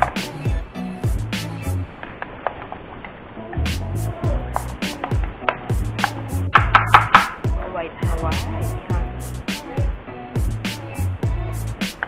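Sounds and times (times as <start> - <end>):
background music with steady beat: 0.0 - 2.2, 3.4 - 12.0.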